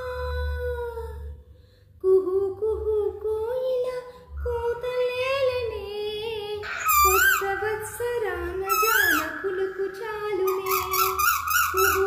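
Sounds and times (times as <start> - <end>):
woman singing: 0.0 - 1.4, 2.0 - 12.0.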